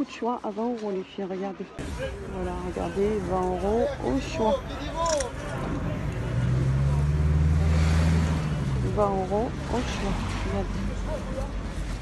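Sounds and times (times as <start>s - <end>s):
vehicle engine droning: 1.8s - 12.0s.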